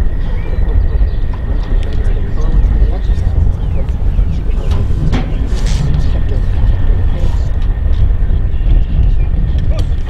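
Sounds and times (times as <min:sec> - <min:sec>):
faint distant voices: 0:00.0 - 0:10.0
wind buffeting microphone: 0:00.0 - 0:10.0.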